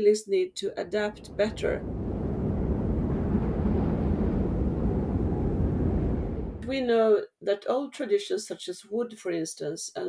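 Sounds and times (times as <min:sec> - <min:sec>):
steady low rumble: 0:00.8 - 0:06.8.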